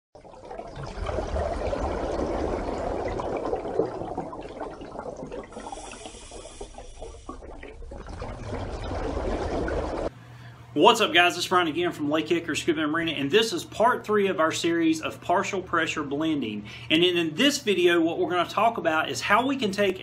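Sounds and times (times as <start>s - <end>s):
water washing: 0.2s - 10.1s.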